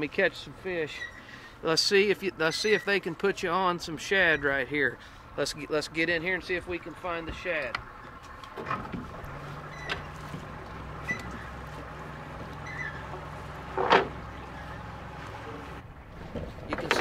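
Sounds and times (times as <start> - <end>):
outboard motor running: 6.7 - 16.0.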